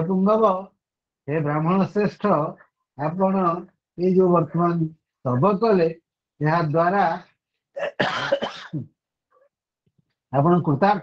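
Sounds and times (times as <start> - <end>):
man coughing: 7.8 - 8.9.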